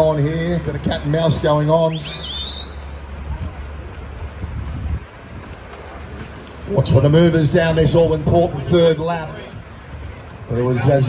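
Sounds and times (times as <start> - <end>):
noisy outdoor background: 0.0 - 11.0
high wavering whistle tone: 1.9 - 3.1
wind rumble on microphone: 3.0 - 11.0.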